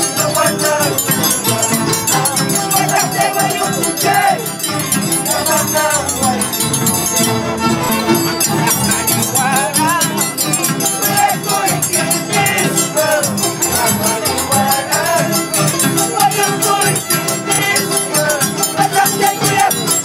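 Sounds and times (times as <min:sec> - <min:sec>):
harps and violins playing: 0:00.0 - 0:18.8
fast clinking of metal: 0:00.0 - 0:20.0.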